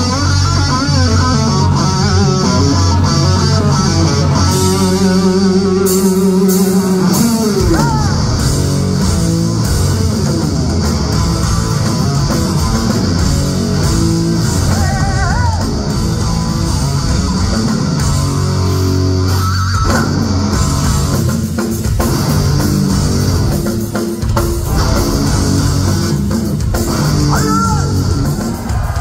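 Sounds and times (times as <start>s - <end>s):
bass guitar: 0.0s - 29.0s
drum kit: 0.0s - 29.0s
electric guitar: 0.0s - 29.0s.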